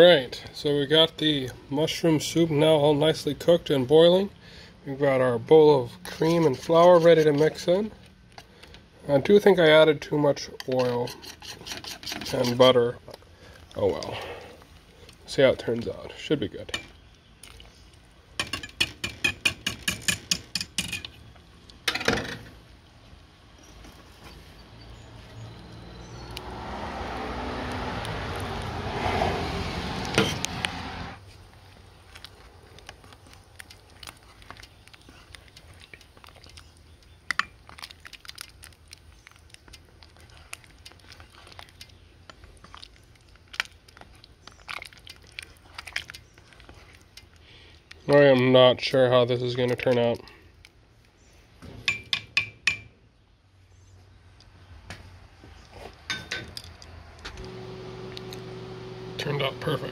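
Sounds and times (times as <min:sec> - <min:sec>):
spoon scraping and clinking pot: 0:06.0 - 0:07.7, 0:10.6 - 0:12.8
whisk rattling against metal pot: 0:10.7 - 0:12.7.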